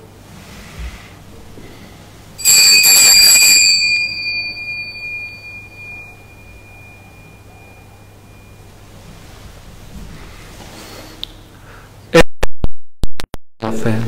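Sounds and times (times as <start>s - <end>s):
small altar bells ringing: 2.4s - 9.0s.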